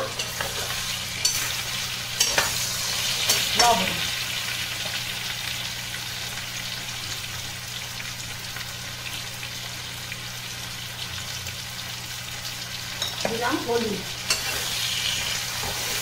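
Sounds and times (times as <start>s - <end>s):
potatoes sizzling in oil: 0.0s - 16.0s.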